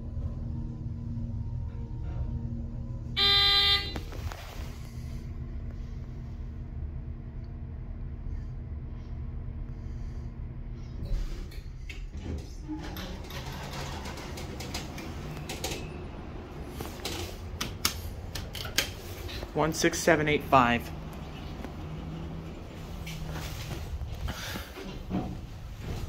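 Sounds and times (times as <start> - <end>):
elevator hum: 0.0 - 26.0
elevator clicking and rattling: 11.4 - 26.0.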